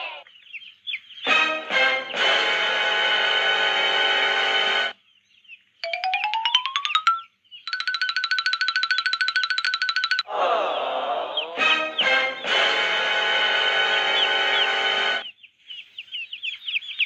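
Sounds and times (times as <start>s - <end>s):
background music: 1.2s - 5.0s, 5.8s - 15.3s.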